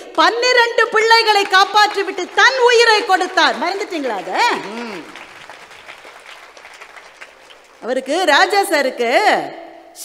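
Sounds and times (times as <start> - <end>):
woman's voice: 0.0 - 5.1, 7.8 - 9.6
audience applause: 1.1 - 8.3.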